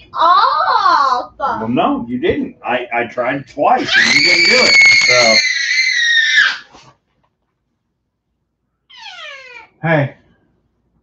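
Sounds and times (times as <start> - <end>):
child screaming: 3.8 - 6.7
child whining cry: 3.8 - 6.7.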